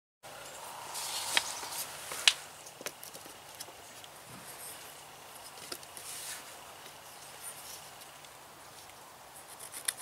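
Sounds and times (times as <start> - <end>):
quiet outdoor background: 0.2 - 10.0
light clicks of yardstick: 1.0 - 4.2.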